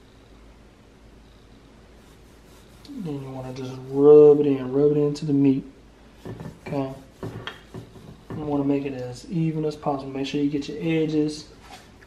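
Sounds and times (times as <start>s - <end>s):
man talking: 2.9s - 5.7s, 6.6s - 7.1s, 8.3s - 11.5s.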